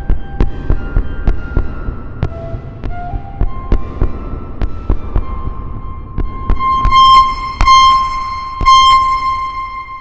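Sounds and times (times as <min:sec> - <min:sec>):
synthesizer high held tone: 0:05.2 - 0:10.0.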